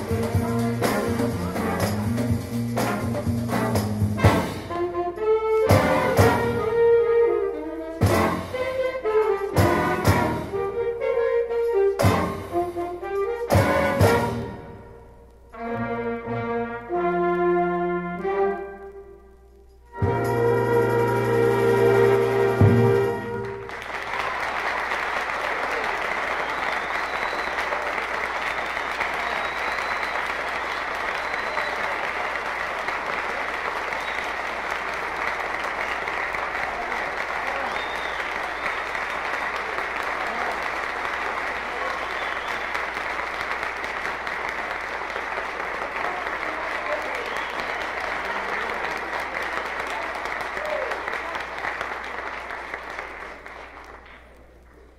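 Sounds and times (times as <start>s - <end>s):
audience applauding: 21.5s - 54.9s.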